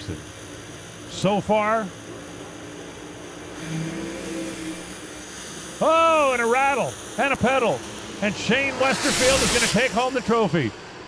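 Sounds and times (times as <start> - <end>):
race car engines at full throttle: 2.1 - 11.0.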